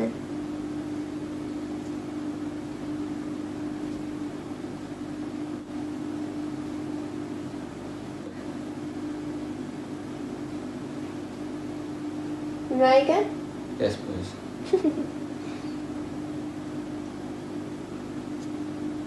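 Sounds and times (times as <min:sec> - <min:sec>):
steady machine hum with hiss: 0:00.0 - 0:19.0.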